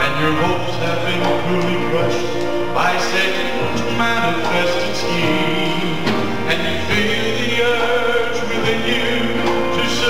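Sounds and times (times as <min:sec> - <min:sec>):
gospel band playing: 0:00.0 - 0:10.0.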